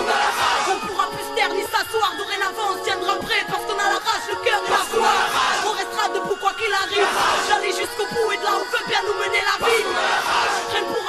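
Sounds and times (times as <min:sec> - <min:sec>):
crowd-like shouting: 0:00.0 - 0:00.9, 0:04.6 - 0:05.7, 0:06.9 - 0:07.6, 0:09.5 - 0:10.8
hip-hop beat with kick drums: 0:00.0 - 0:11.0
rap vocals: 0:00.0 - 0:11.0.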